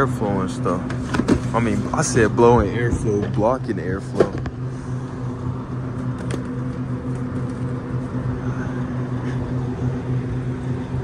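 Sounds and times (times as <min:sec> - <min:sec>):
freezer fans humming: 0:00.0 - 0:11.0.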